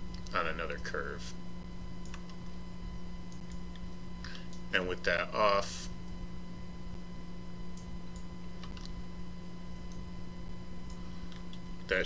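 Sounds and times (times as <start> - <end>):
low electrical hum: 0.0 - 12.0
computer mouse clicks: 2.0 - 2.4, 7.8 - 9.0, 10.9 - 11.7.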